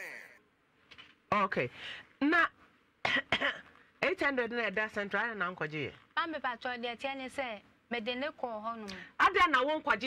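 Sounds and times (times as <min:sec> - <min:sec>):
person coughing: 0:03.0 - 0:03.8.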